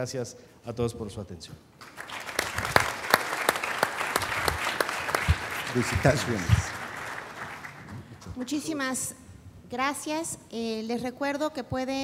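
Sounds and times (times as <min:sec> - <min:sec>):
audience applauding: 0:01.8 - 0:08.3.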